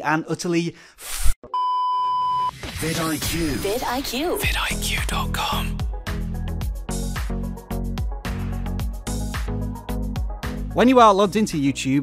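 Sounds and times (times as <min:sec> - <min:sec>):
electronic bleep tone: 0:01.5 - 0:02.6.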